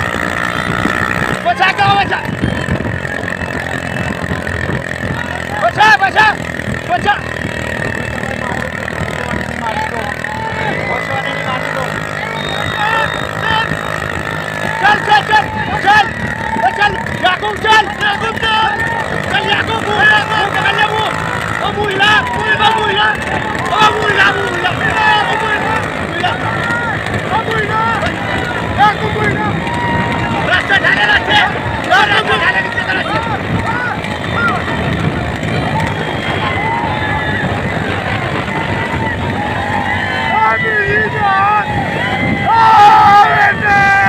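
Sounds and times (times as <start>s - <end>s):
cart on road: 0.0s - 44.0s
men shouting: 0.0s - 44.0s
motorcycles running: 0.0s - 44.0s
wind rumble on microphone: 0.0s - 44.0s.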